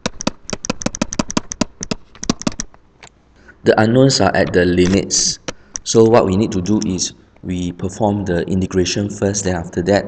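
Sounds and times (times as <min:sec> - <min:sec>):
stylus tapping on tablet: 0:00.0 - 0:02.7.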